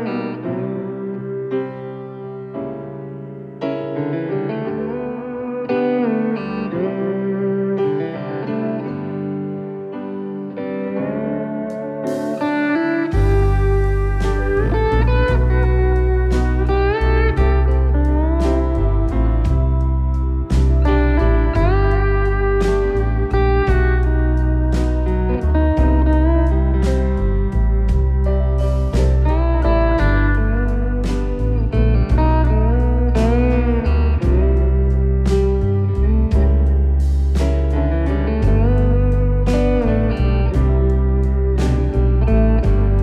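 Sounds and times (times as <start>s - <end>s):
piano: 0.0s - 43.0s
lap steel guitar sliding notes: 4.0s - 43.0s
bass and drums: 13.1s - 43.0s.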